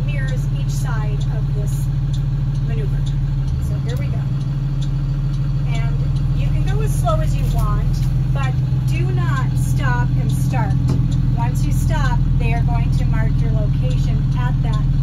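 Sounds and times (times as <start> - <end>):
bus engine running: 0.0 - 15.0.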